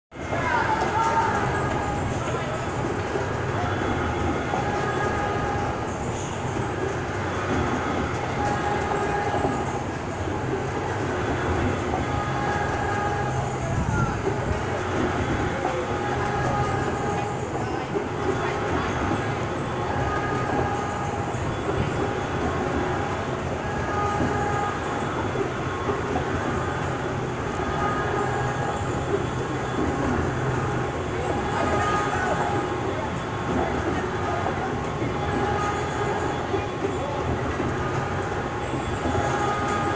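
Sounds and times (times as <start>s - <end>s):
carousel mechanical rumble: 0.1s - 39.9s.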